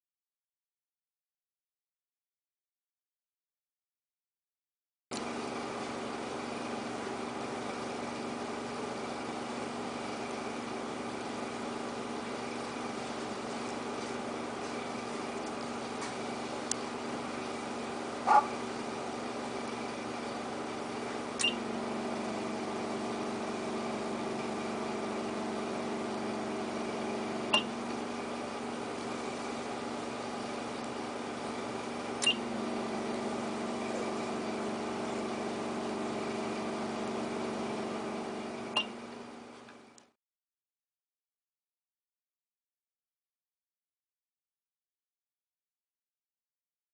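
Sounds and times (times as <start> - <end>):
machine humming: 5.2 - 40.1
sharp machine click: 21.4 - 21.6, 32.2 - 32.4.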